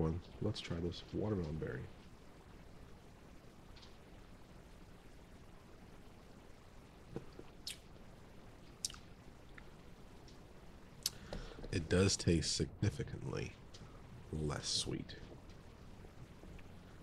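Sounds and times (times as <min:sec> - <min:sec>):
soft mouth clicks: 0:07.2 - 0:07.9, 0:08.8 - 0:09.1, 0:11.0 - 0:11.4.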